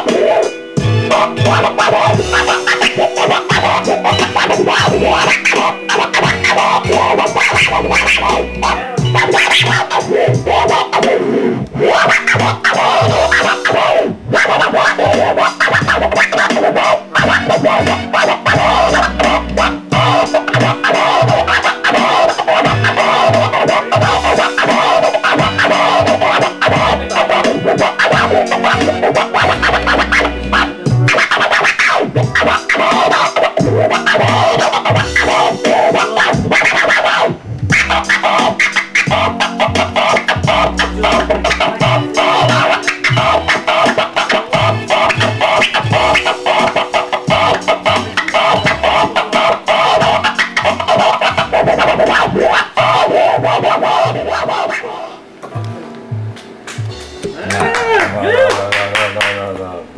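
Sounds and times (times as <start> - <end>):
hip-hop beat: 0.0 - 59.6
vinyl record scratching: 0.0 - 59.9
deep bass line: 0.8 - 2.5, 3.5 - 5.4, 6.2 - 10.7, 11.5 - 13.5, 15.0 - 16.2, 17.2 - 21.6, 22.6 - 24.4, 25.4 - 27.3, 28.1 - 31.2, 32.2 - 32.6, 33.6 - 35.3, 37.5 - 38.1, 39.1 - 43.5, 44.6 - 46.3, 47.3 - 49.0, 51.4 - 52.9.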